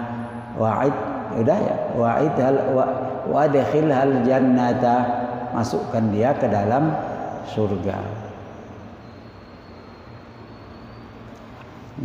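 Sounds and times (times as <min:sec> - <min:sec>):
speech reverberating in a hall: 0:00.0 - 0:12.0.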